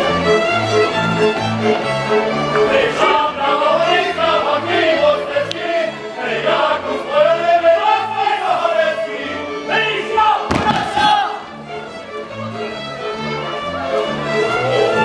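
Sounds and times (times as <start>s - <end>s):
fiddles playing melody: 0.0s - 15.0s
group of voices singing: 2.4s - 12.0s
loud burst: 10.5s - 11.4s.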